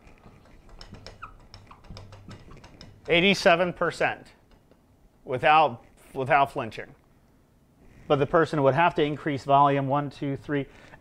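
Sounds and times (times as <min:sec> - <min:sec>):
marker squeaking on whiteboard: 0:00.0 - 0:03.7.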